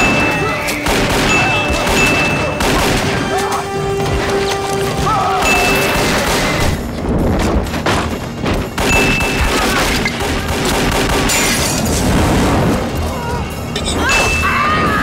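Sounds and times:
gunfire volleys: 0.0 - 3.4, 8.7 - 12.1
orchestral score: 0.0 - 15.0.

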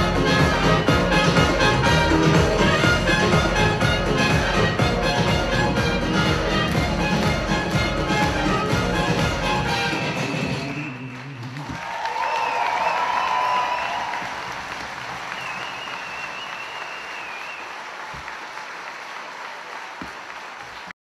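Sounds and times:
dance music: 0.0 - 11.7
audience applauding and cheering: 0.0 - 20.9.

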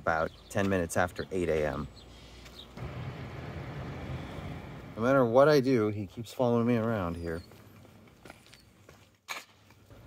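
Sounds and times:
outdoor background noise: 0.0 - 10.0
vehicle engine humming: 2.7 - 5.6.

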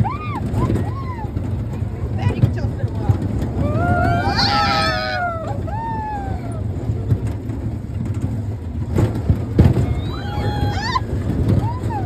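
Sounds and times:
ride low rumble: 0.0 - 12.0
riders screaming: 3.6 - 6.7, 9.8 - 12.0.

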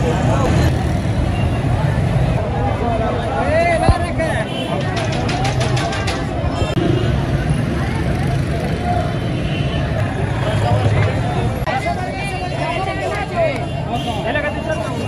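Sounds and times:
low rumble of street traffic: 0.0 - 15.0
many people talking: 0.0 - 15.0.

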